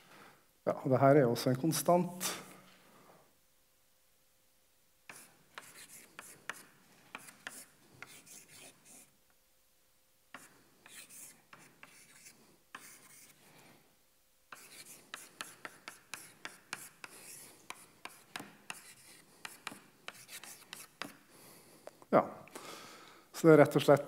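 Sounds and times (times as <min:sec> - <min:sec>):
chalk scratching on chalkboard: 0:05.1 - 0:09.1, 0:10.3 - 0:13.4, 0:14.5 - 0:21.3
chalk tapping on chalkboard: 0:05.1 - 0:09.1, 0:10.3 - 0:13.4, 0:14.5 - 0:21.3.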